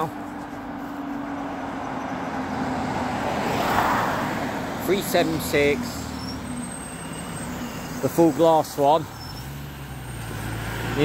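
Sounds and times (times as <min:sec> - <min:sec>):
bus passing by: 0:00.0 - 0:11.0.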